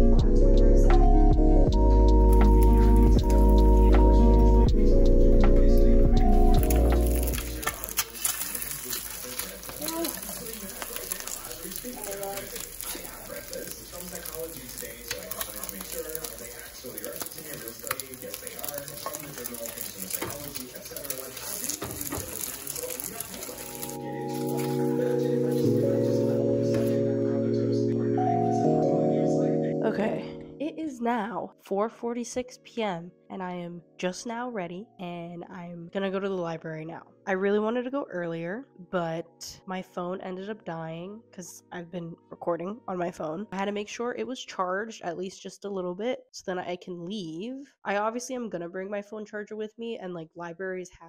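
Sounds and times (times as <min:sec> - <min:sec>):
background music: 0:00.0 - 0:44.4
eggs sizzling in a pan: 0:06.4 - 0:25.8.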